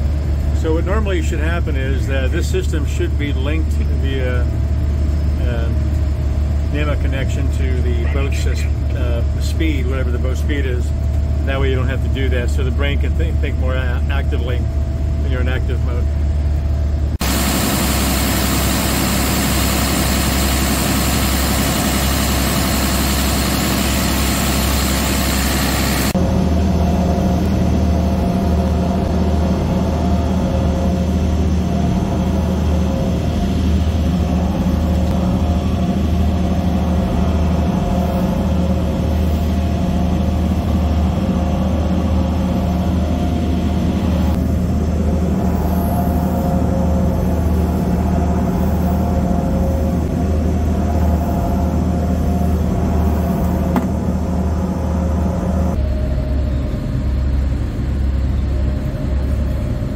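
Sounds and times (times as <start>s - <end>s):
diesel engines droning: 0.0s - 59.9s.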